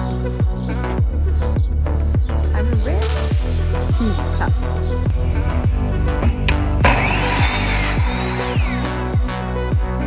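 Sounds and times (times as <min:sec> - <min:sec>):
electronic music with thumping beat: 0:00.0 - 0:10.0
saw blade cutting wood: 0:06.8 - 0:09.0
miter saw whining: 0:06.8 - 0:09.4.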